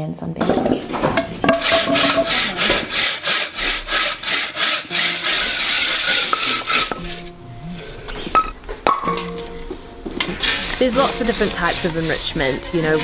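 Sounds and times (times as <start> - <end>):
sharp knocks: 0.4 - 3.0
background music: 0.4 - 13.0
saw cutting bamboo: 1.5 - 7.2, 10.4 - 13.0.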